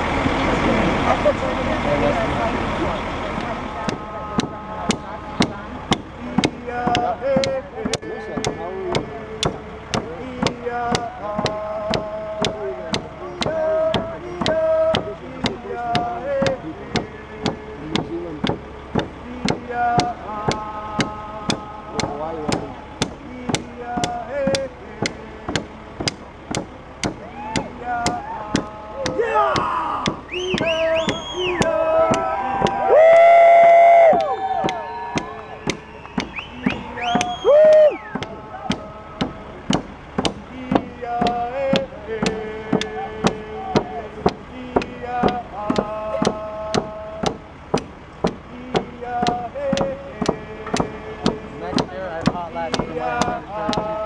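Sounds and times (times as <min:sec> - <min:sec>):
drums beating steady pulse: 0:00.0 - 0:54.0
group of voices singing: 0:00.0 - 0:54.0
loud held vocal call: 0:27.2 - 0:39.8.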